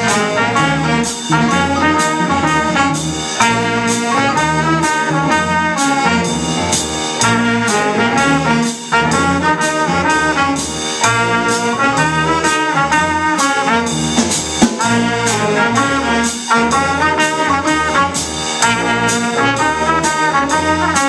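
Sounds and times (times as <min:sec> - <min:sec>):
bass line: 0:00.0 - 0:21.0
drum kit keeping time: 0:00.0 - 0:21.0
wind instruments playing chords: 0:00.0 - 0:21.0.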